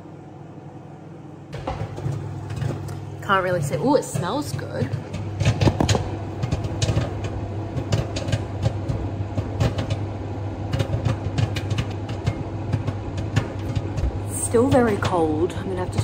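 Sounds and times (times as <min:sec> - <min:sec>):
microwave humming: 0:00.0 - 0:16.0
popcorn popping: 0:01.5 - 0:16.0.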